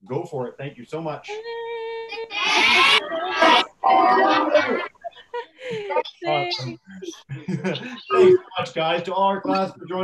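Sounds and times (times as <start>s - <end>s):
children shouting together: 2.2s - 4.9s.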